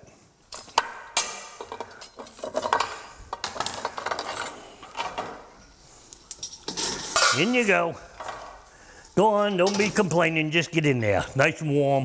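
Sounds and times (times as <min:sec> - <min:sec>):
lobster shells clattering on platter: 0:00.7 - 0:05.4.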